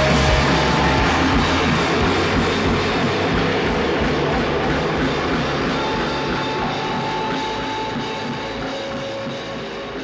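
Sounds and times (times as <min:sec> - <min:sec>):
distorted electric guitar: 0:00.0 - 0:10.0
drums: 0:00.0 - 0:10.0.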